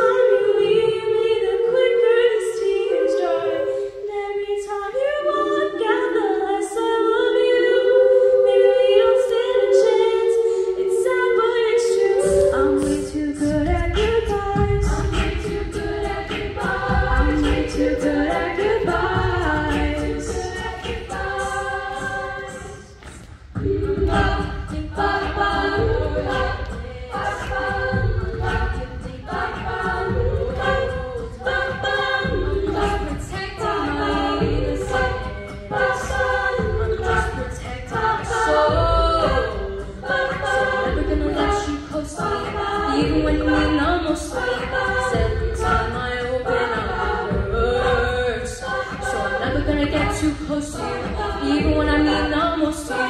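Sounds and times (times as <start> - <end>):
a cappella group singing harmony: 0.0 - 53.0
vocal percussion beat: 0.0 - 53.0.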